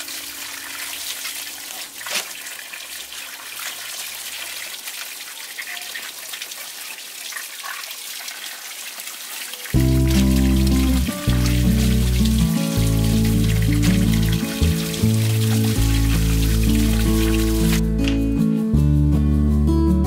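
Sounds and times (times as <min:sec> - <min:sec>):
water running into plastic basin: 0:00.0 - 0:17.8
background music: 0:09.7 - 0:20.0.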